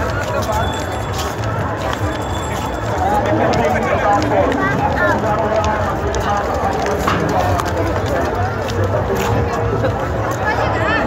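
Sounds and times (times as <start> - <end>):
many voices talking: 0.0 - 11.0.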